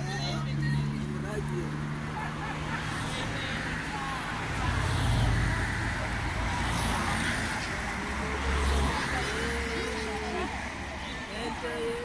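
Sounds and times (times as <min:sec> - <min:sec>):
faint voices: 0:00.0 - 0:12.0
vehicles driving past: 0:00.0 - 0:12.0.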